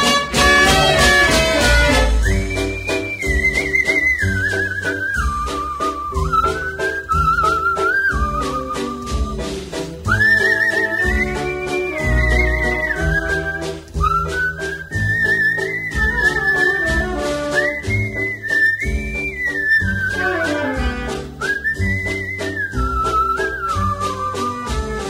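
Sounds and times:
band with bass and percussion: 0:00.0 - 0:07.3, 0:08.1 - 0:15.1, 0:15.9 - 0:25.0
whistled melody: 0:00.0 - 0:25.0.

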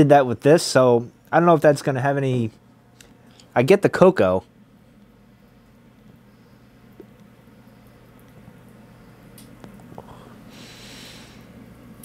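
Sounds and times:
steady low room hum: 0:00.0 - 0:12.0
soft exhale: 0:10.0 - 0:11.6.

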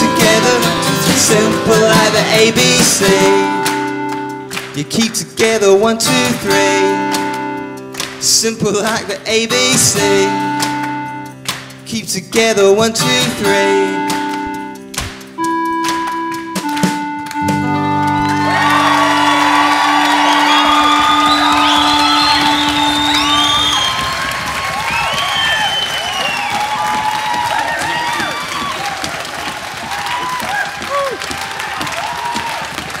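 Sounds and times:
held melodica note: 0:09.9 - 0:11.4, 0:13.5 - 0:28.8
audience applause and cheers: 0:17.6 - 0:33.0.

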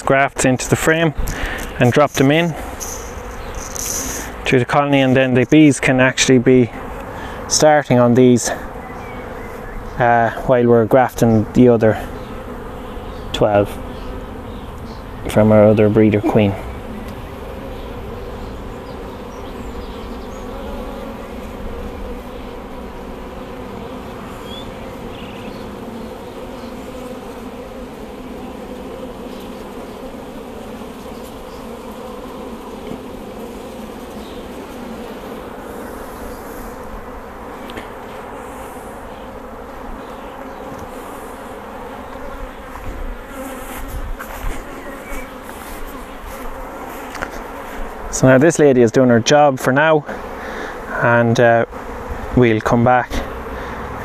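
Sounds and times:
bees humming: 0:00.0 - 0:54.0.

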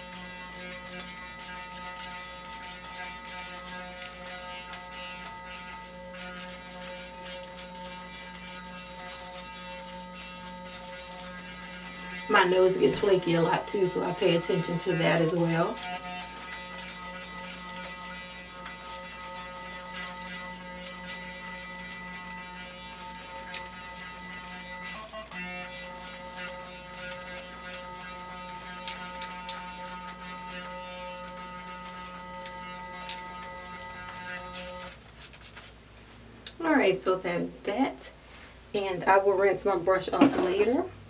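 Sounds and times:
facial cleansing brush humming: 0:00.0 - 0:35.7.

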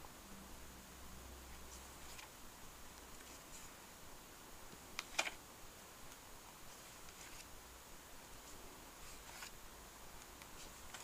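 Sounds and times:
book page turning: 0:01.6 - 0:02.3, 0:05.0 - 0:05.4, 0:06.7 - 0:07.5, 0:08.4 - 0:09.6, 0:10.4 - 0:11.0.

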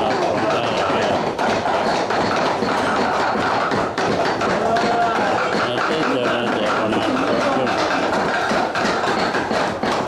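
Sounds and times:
knives chopping meat: 0:00.0 - 0:10.0.

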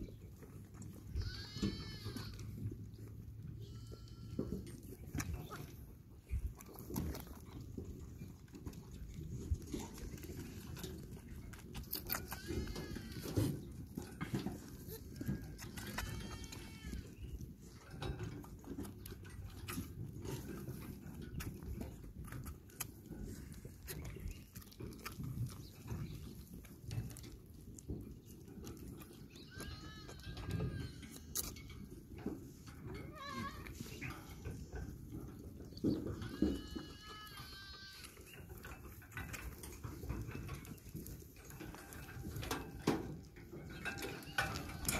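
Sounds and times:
goat kid bleating: 0:00.8 - 0:05.6, 0:11.9 - 0:17.4, 0:29.2 - 0:31.6, 0:32.9 - 0:34.5, 0:36.1 - 0:38.3.

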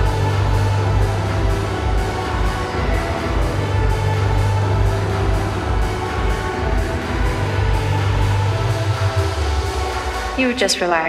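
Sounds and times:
instrumental dance track: 0:00.0 - 0:11.0.

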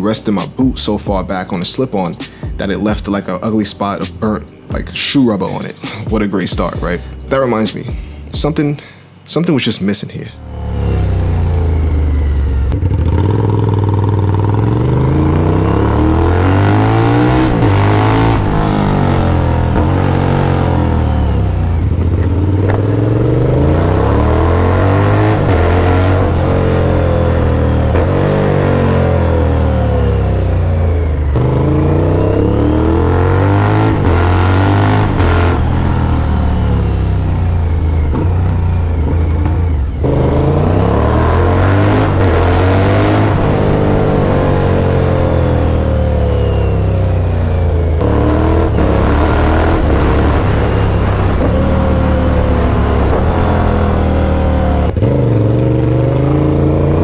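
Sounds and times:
motorcycle engine revving: 0:10.3 - 0:57.0.

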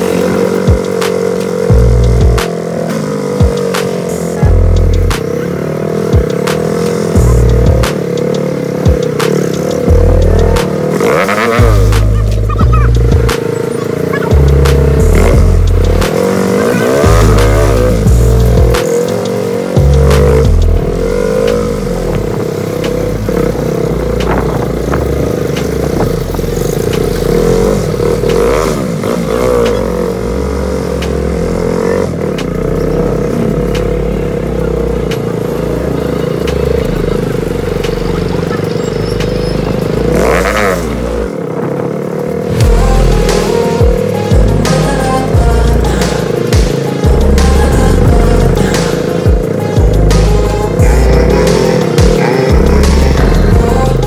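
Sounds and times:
music with stepping bass line: 0:00.0 - 0:41.4, 0:42.4 - 0:54.0
motorcycle engine revving: 0:00.0 - 0:54.0.

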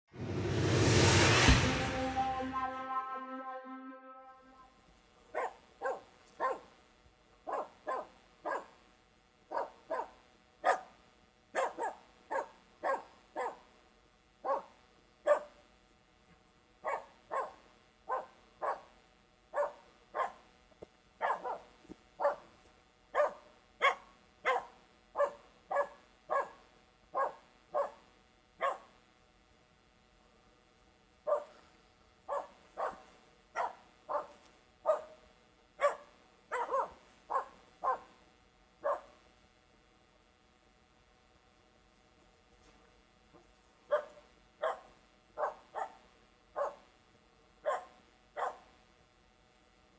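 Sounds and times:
dog barking: 0:05.3 - 0:06.7, 0:07.4 - 0:08.8, 0:09.5 - 0:11.0, 0:11.6 - 0:13.7, 0:14.4 - 0:15.6, 0:16.8 - 0:18.9, 0:19.6 - 0:20.4, 0:21.2 - 0:22.5, 0:23.2 - 0:28.0, 0:28.6 - 0:28.9, 0:31.2 - 0:31.6, 0:32.3 - 0:35.2, 0:35.8 - 0:38.2, 0:38.8 - 0:39.2, 0:43.9 - 0:46.0, 0:46.6 - 0:46.9, 0:47.6 - 0:48.7.

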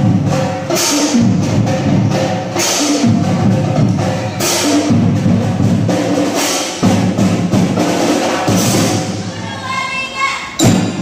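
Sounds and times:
children's drum band playing: 0:00.0 - 0:11.0.

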